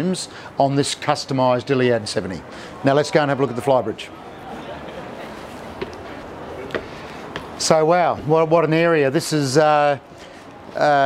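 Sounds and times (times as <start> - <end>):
background hubbub: 0.0 - 11.0
footsteps on steps: 5.7 - 7.6.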